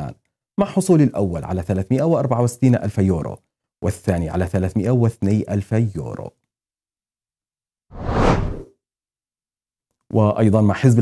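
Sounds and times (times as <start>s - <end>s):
whoosh sound effect: 8.0s - 8.7s.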